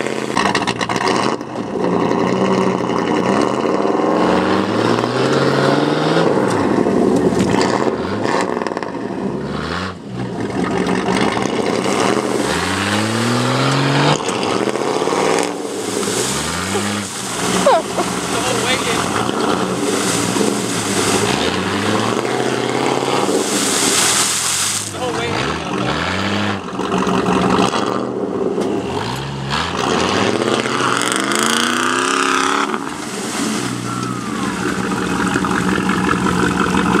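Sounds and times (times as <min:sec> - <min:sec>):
engines revving under load: 0:00.0 - 0:37.0
tyres spinning in mud: 0:10.2 - 0:28.2, 0:29.0 - 0:37.0.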